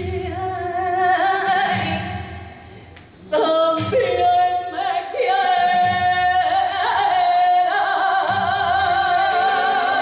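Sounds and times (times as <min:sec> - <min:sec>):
woman singing into a microphone: 0:00.0 - 0:02.5, 0:03.3 - 0:10.0.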